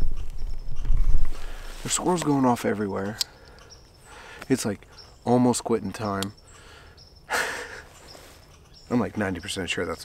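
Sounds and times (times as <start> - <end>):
faint high-pitched chirping: 0.0 - 10.0.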